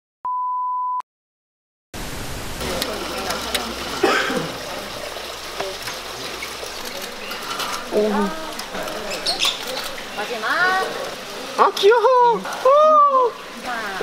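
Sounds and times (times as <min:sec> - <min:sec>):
people talking: 0:02.6 - 0:14.0.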